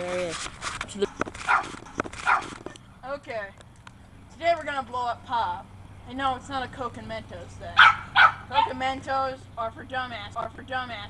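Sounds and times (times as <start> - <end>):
dog barking: 1.4 - 2.6, 7.8 - 8.8.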